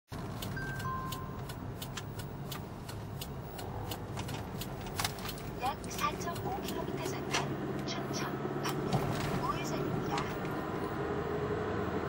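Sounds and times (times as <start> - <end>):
turn signal ticking: 0.1 - 11.0
car road and engine rumble: 0.1 - 12.0
short high beeps: 0.6 - 1.4.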